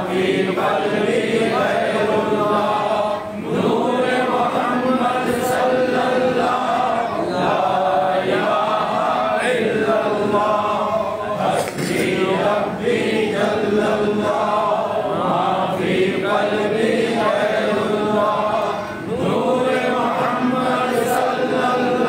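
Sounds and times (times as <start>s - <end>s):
voices chanting: 0.0s - 22.0s.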